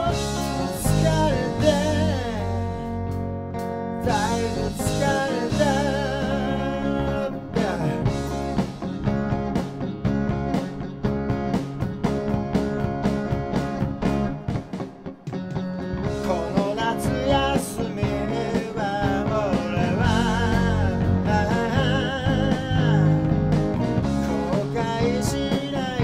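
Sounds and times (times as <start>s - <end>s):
steady drum beats: 0.0s - 3.2s, 4.0s - 26.0s
live rock band playing: 0.0s - 26.0s.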